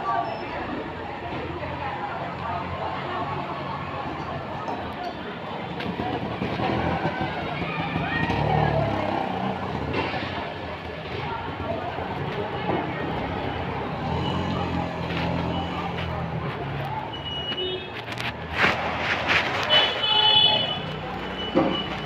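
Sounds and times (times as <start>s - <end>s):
indistinct voices: 0.0s - 22.0s.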